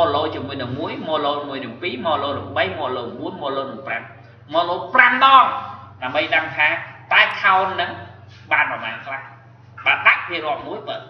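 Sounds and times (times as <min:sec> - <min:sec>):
man lecturing: 0:00.0 - 0:11.0
steady low hum: 0:00.0 - 0:11.0.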